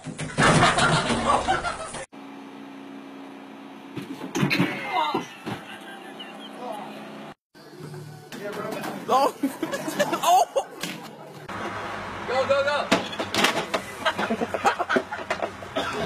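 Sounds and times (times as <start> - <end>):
thumps and clatter of falling person: 4.0 - 5.7.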